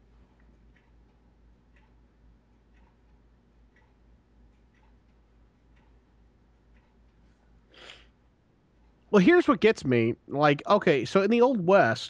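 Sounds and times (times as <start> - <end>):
clock ticking faintly: 0.0 - 11.5
low steady hum: 0.0 - 12.0.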